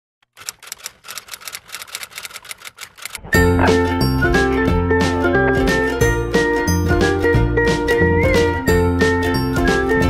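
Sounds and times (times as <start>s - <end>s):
fast sharp clicks: 0.2s - 3.3s.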